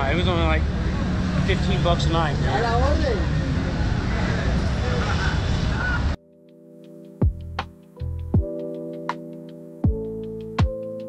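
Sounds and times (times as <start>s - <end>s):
traffic rumble: 0.0s - 6.2s
lo-fi background music: 6.2s - 11.0s.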